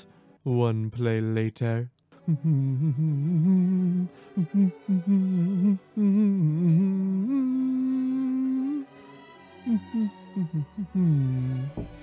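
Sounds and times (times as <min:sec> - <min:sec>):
man humming: 0:02.2 - 0:08.9, 0:09.7 - 0:12.0.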